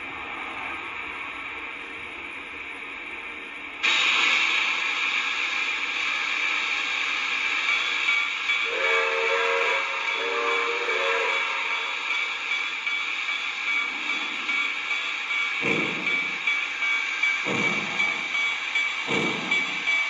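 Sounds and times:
steam hiss: 0:03.2 - 0:20.0
steam locomotive chuff: 0:03.8 - 0:20.0.

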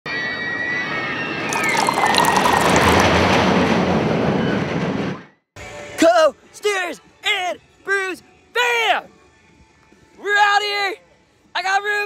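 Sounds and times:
beer pouring into glass: 0:01.4 - 0:03.2.

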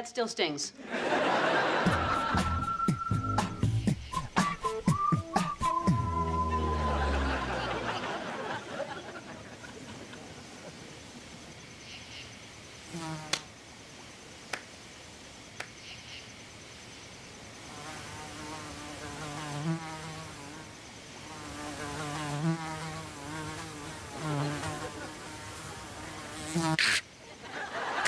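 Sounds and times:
flying insect buzzing: 0:03.6 - 0:08.7, 0:12.6 - 0:13.8, 0:17.0 - 0:27.1.

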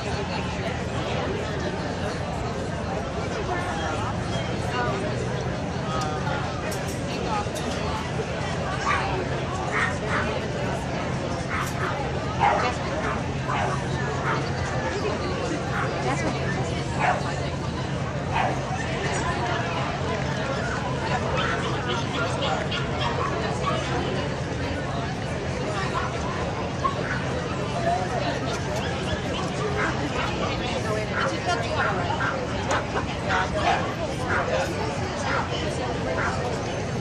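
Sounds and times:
crowd chatter: 0:00.0 - 0:37.0.

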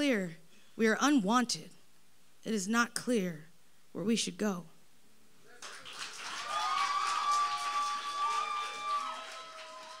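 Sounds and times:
audience applauding and cheering: 0:05.6 - 0:10.0.

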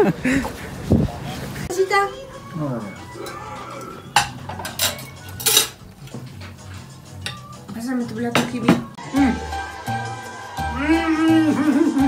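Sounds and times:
dishes and cutlery clinking: 0:03.0 - 0:09.0.

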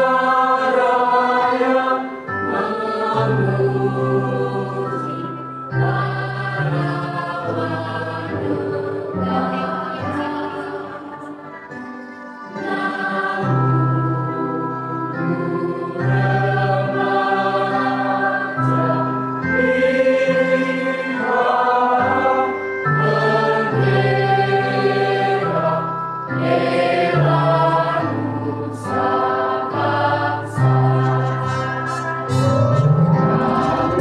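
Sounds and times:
children's choir singing: 0:00.0 - 0:34.0.

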